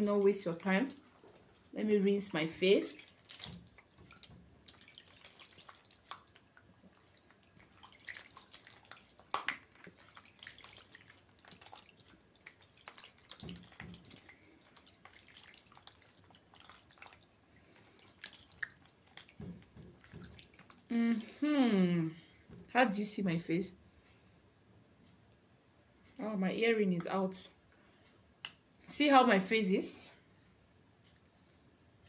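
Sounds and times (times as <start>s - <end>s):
water splashing and dripping: 0.0s - 20.9s.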